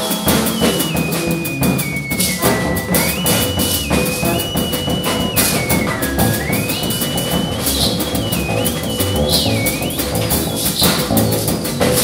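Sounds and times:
drum kit with cymbal hits: 0:00.0 - 0:12.0
theremin sliding notes: 0:00.0 - 0:12.0
upright bass: 0:00.3 - 0:12.0.

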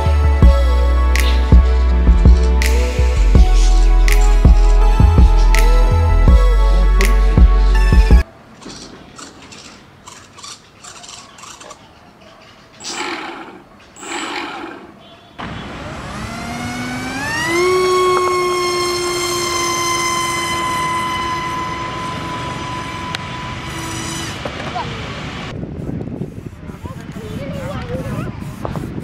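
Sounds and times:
electric motor propeller whine: 0:12.9 - 0:14.8, 0:15.4 - 0:25.5.

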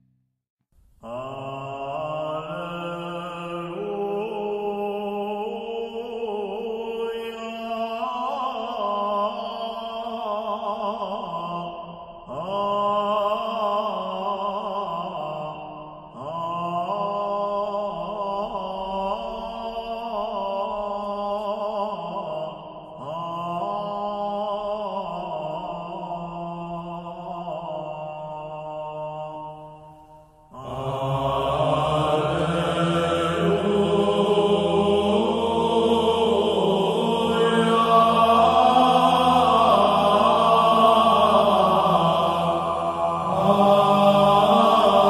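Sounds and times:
liturgical chant: 0:01.0 - 0:45.0.

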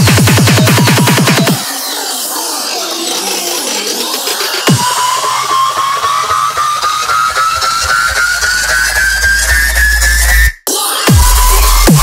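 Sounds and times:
deep bass: 0:11.1 - 0:12.0.

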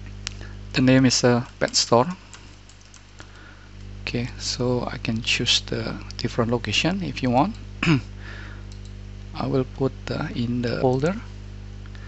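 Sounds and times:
low electrical hum: 0:00.0 - 0:12.0
computer keyboard typing: 0:01.4 - 0:03.3, 0:08.7 - 0:09.0.

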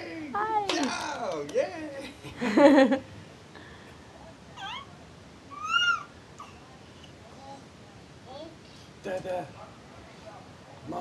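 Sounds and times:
baby squealing: 0:05.5 - 0:06.1.

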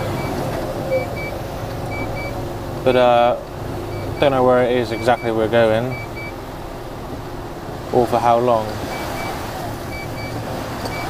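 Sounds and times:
reversing alarm beeps: 0:00.0 - 0:02.4, 0:03.9 - 0:04.3, 0:04.9 - 0:06.3, 0:08.9 - 0:11.0
diesel engine rumble: 0:00.0 - 0:11.0.

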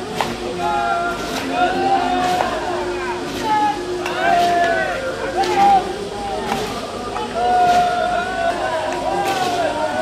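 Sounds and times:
players shouting long calls: 0:00.5 - 0:10.0.

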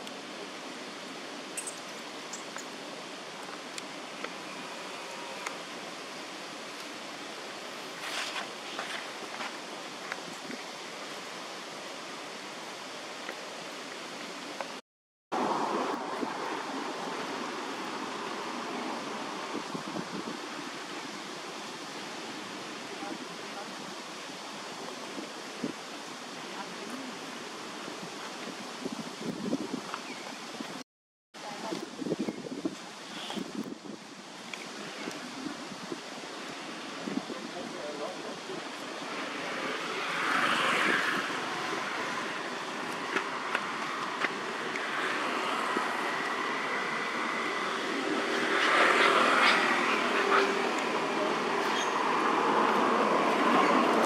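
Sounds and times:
wind: 0:00.0 - 0:54.0.

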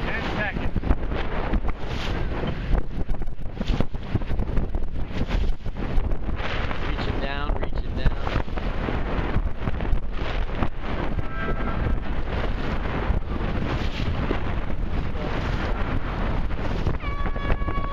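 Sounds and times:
choppy water: 0:00.0 - 0:17.9
strong wind buffeting microphone: 0:00.0 - 0:17.9.

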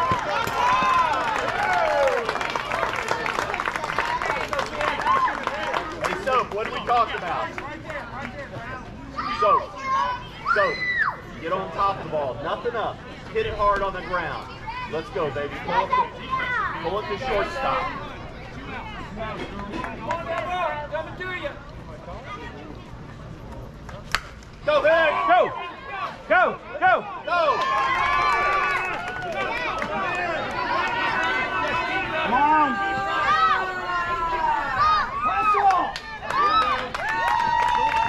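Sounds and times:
crowd shouting and cheering: 0:00.0 - 0:11.4, 0:24.7 - 0:38.0
scattered talk: 0:02.4 - 0:37.0.

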